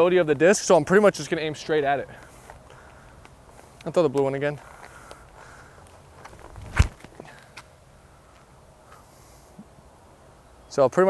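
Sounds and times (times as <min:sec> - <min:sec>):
low outdoor background: 0:00.0 - 0:11.0
faint footstep clicks: 0:02.1 - 0:07.7
feet thumping on concrete: 0:06.2 - 0:07.7.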